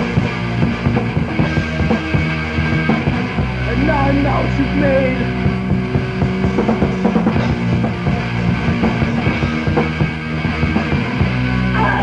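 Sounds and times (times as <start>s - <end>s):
rock band music: 0.0s - 12.0s.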